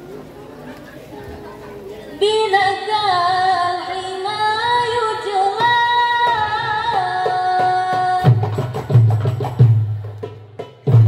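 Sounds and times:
girl singing unaccompanied: 0:02.2 - 0:08.6
drum strike: 0:07.6 - 0:11.0.

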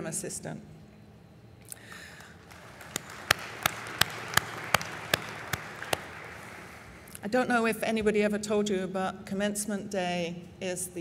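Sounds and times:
sharp hand claps: 0:02.2 - 0:07.0
light applause: 0:02.2 - 0:07.1.

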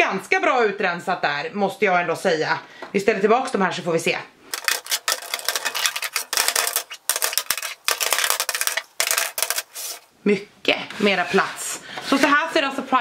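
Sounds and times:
bottles and jars clinking: 0:04.5 - 0:10.0.

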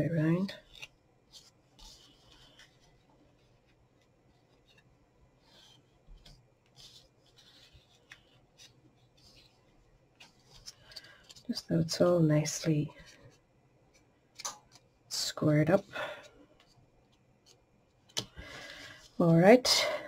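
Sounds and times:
cardstock rustling: 0:00.4 - 0:14.9.

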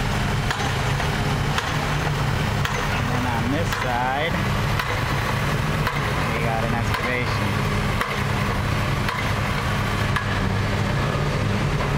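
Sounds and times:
diesel engine droning: 0:00.0 - 0:11.9.

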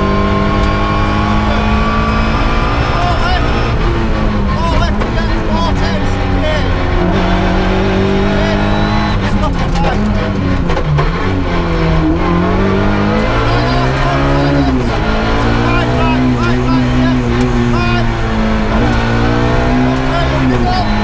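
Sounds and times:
rally car engine revving: 0:00.0 - 0:21.0.

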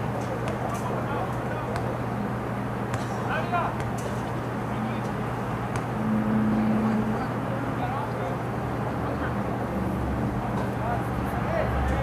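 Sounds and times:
steady low hum: 0:00.0 - 0:08.9
higher steady tone: 0:05.9 - 0:07.3.

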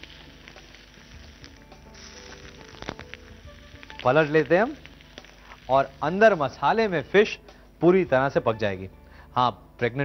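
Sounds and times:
fish frying in oil sizzling: 0:00.0 - 0:06.9
soft background music: 0:00.0 - 0:10.0.

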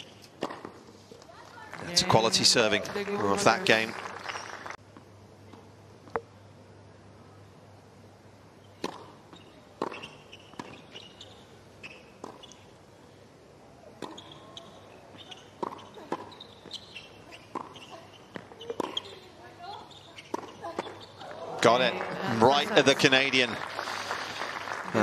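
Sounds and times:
tennis balls hit by rackets: 0:00.2 - 0:00.9, 0:08.8 - 0:10.9, 0:12.2 - 0:12.6, 0:13.8 - 0:19.4, 0:20.2 - 0:21.9
balls bouncing on hard court: 0:14.0 - 0:21.3.

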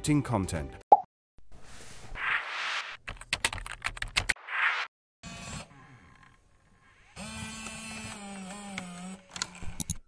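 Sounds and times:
whooshing noise: 0:02.0 - 0:03.0
computer keyboard typing: 0:03.1 - 0:04.3.

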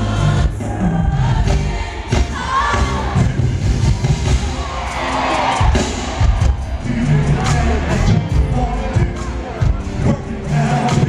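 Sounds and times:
audience cheering and singing: 0:00.0 - 0:11.0
live band playing: 0:00.0 - 0:11.0.

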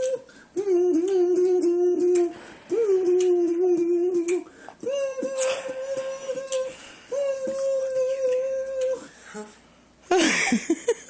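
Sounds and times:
mouth percussive clicks: 0:00.0 - 0:09.0
hummed notes into microphone: 0:00.0 - 0:09.6.

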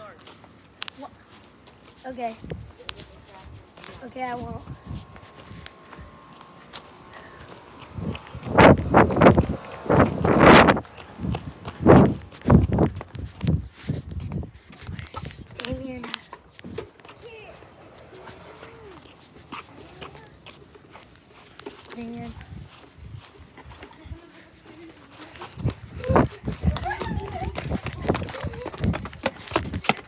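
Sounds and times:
faint voices: 0:14.6 - 0:30.0.

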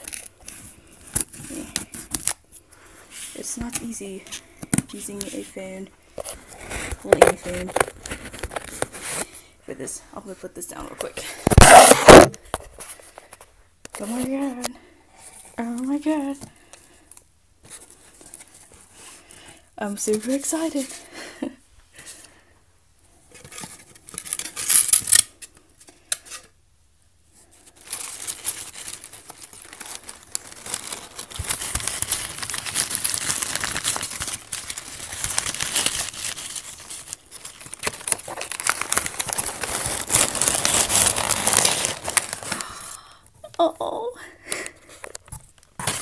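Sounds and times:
newspaper crinkling and rustling: 0:00.0 - 0:09.4, 0:11.4 - 0:13.4, 0:27.5 - 0:42.8.

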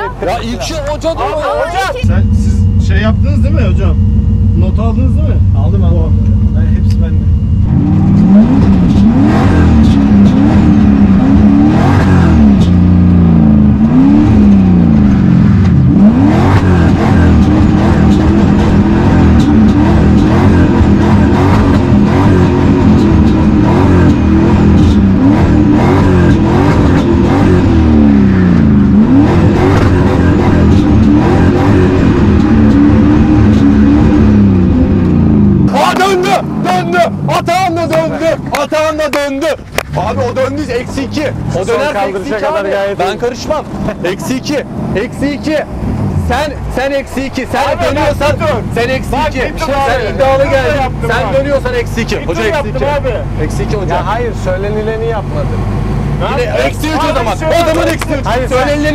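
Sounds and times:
car engine revving: 0:00.0 - 0:58.9.

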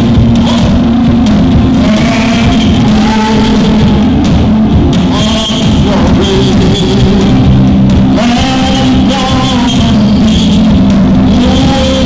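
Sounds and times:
gospel band music: 0:00.0 - 0:12.0.

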